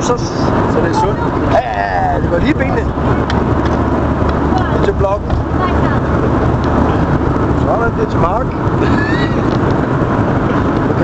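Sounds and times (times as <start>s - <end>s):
airliner cabin engine roar: 0.0s - 11.0s.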